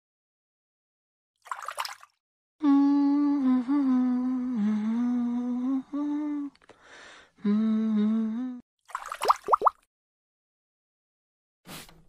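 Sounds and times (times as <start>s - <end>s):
person humming: 2.6s - 6.6s, 7.4s - 8.6s.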